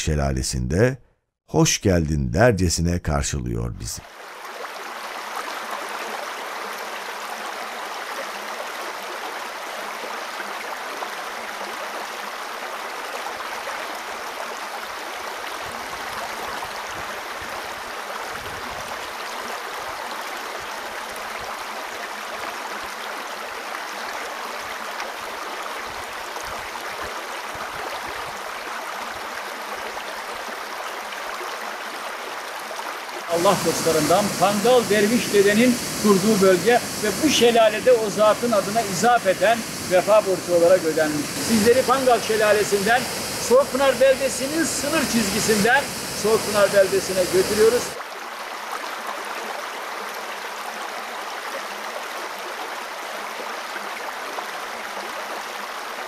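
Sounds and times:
water pouring over waterfall: 33.3s - 48.0s.

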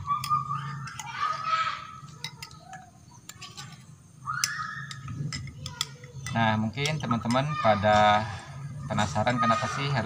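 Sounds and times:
chickens calling: 0.0s - 3.4s.

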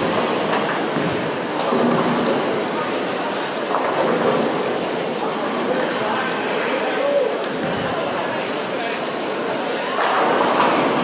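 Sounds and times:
bowling balls rolling: 0.0s - 3.0s.

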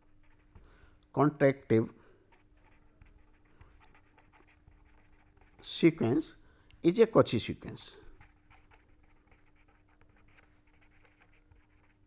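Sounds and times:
pen scratching on paper: 0.0s - 0.6s, 2.3s - 5.7s, 8.2s - 12.0s
faint steady hum: 0.0s - 12.0s.

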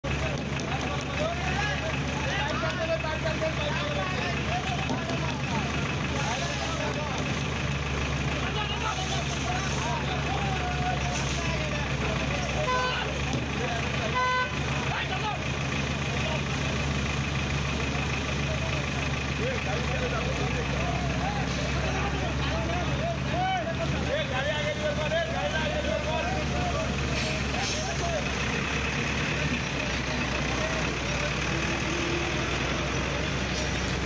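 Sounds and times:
people shouting and talking: 0.0s - 34.0s
vehicle engine running: 0.0s - 34.0s
vehicle horn toots: 12.6s - 13.1s, 14.0s - 14.7s.

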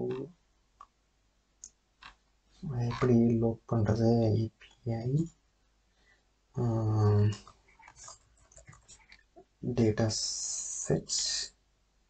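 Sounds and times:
person speaking: 0.0s - 0.3s, 2.6s - 5.3s, 6.6s - 9.0s, 9.6s - 11.5s.

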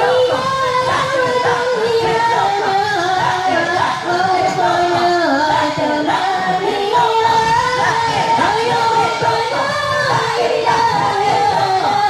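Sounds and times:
unaccompanied devotional chanting: 0.0s - 12.0s.

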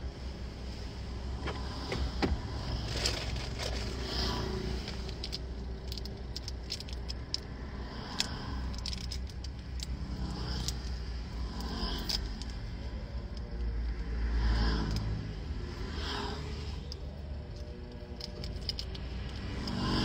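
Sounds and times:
car cabin rumble: 1.0s - 5.6s
light clicks and rattles: 1.4s - 14.1s, 16.8s - 20.0s.

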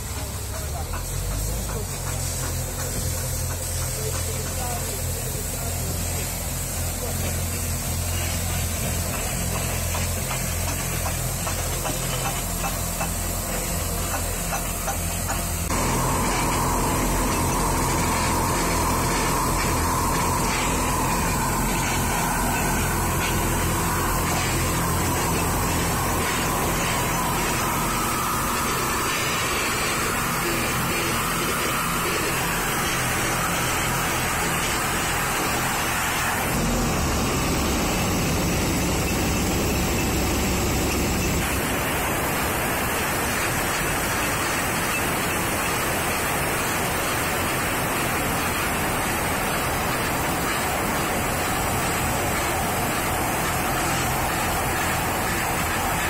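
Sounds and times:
diesel excavator engine running: 0.0s - 56.0s
hissing whir of power tool: 0.0s - 56.0s.

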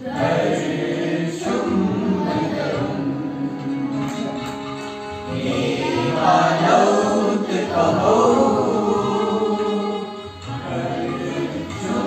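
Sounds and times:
children singing together: 0.0s - 4.3s, 5.2s - 12.0s.

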